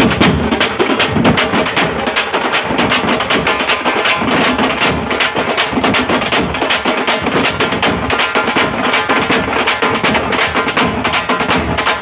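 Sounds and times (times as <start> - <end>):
bass drums: 0.0 - 12.0
frame drums beaten with sticks: 0.0 - 12.0.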